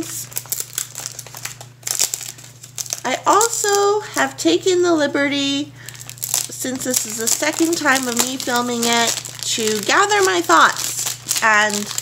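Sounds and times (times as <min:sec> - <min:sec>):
plastic wrap crinkling: 0:00.0 - 0:04.3, 0:05.8 - 0:12.0.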